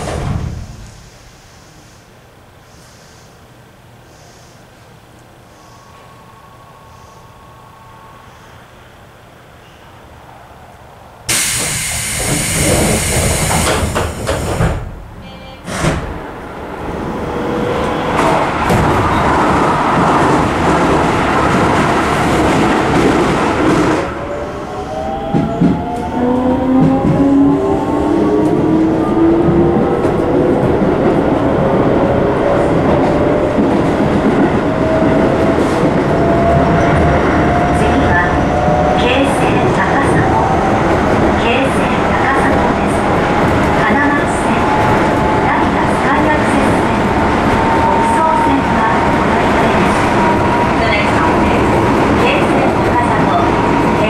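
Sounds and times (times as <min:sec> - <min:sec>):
train running rumble: 0:00.0 - 0:01.6, 0:11.3 - 0:54.0
train rushing past: 0:05.3 - 0:54.0.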